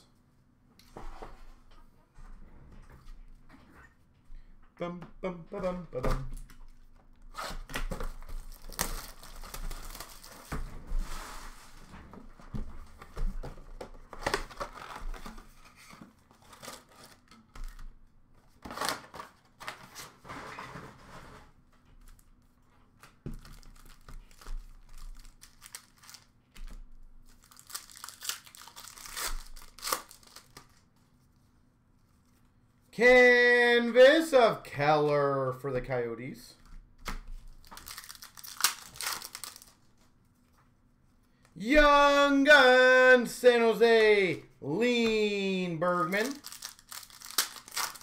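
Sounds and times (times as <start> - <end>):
wrappers crinkling: 7.4 - 10.5, 23.4 - 30.9, 37.5 - 40.0, 46.0 - 48.0.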